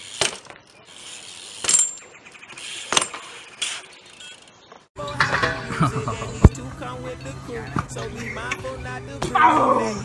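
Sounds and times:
bike clanking against concrete: 0:00.0 - 0:02.1, 0:02.9 - 0:06.6.

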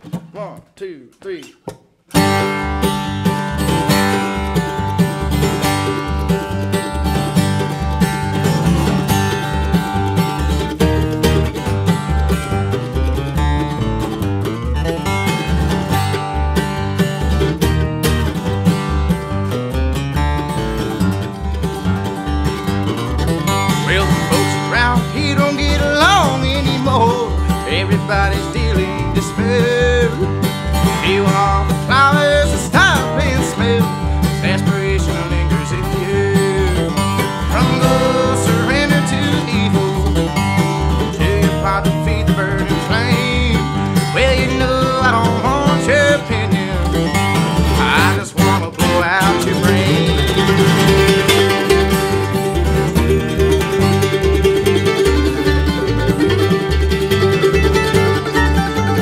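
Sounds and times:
mandolin: 0:00.0 - 0:00.7, 0:01.4 - 0:59.0
acoustic guitar: 0:00.0 - 0:59.0
plucked upright bass: 0:01.6 - 0:59.0.

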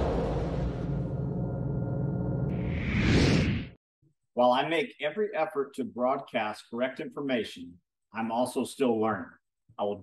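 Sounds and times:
low intro music: 0:00.0 - 0:03.0.

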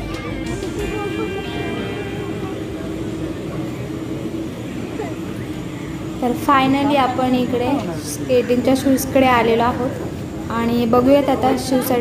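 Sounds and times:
distant indistinct voices: 0:00.0 - 0:12.0
faint music: 0:00.0 - 0:12.0
steady low hum: 0:00.0 - 0:12.0.

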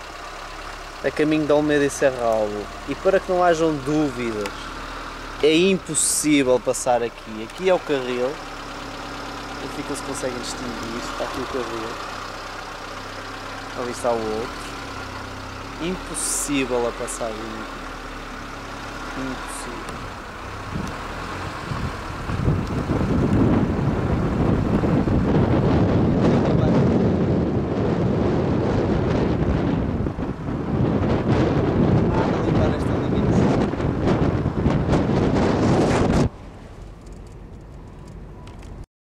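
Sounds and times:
car interior drone: 0:00.0 - 0:38.9
wind buffeting microphone: 0:19.9 - 0:38.8.

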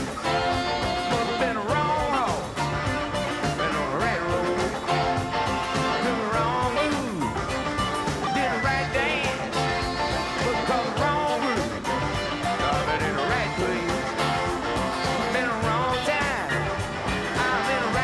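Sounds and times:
bass guitar: 0:00.0 - 0:18.0
electric guitar with bent notes: 0:00.0 - 0:18.0
steady drum beat: 0:00.0 - 0:18.0.

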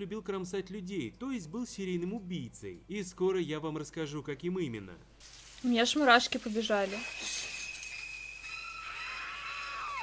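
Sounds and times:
long high scream: 0:07.8 - 0:10.0.

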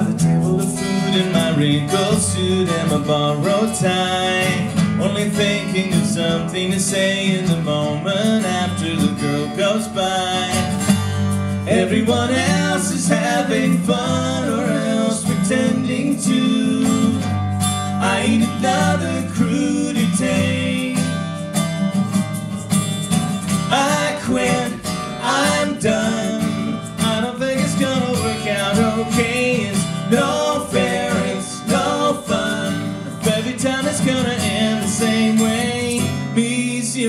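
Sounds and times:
voices singing wordless melody: 0:00.0 - 0:21.7, 0:23.5 - 0:37.0
acoustic guitar playing: 0:00.0 - 0:37.0.

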